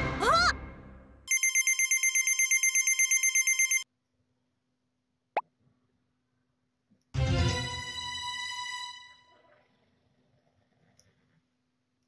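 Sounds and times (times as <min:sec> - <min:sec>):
fast trilling telephone ring: 0:01.3 - 0:03.8.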